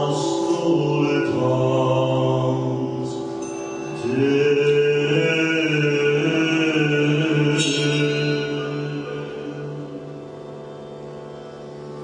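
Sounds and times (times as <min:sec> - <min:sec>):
mouthbow low drone: 0:00.0 - 0:12.0
string stroke: 0:00.0 - 0:12.0.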